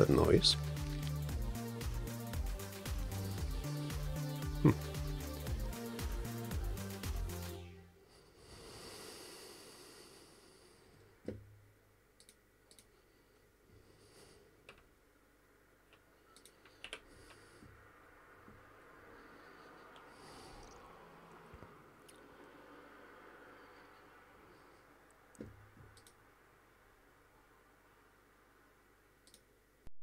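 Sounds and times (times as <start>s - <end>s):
keyboard and mouse clicks: 12.2s - 12.9s, 15.9s - 17.4s, 25.3s - 26.2s, 29.2s - 29.5s.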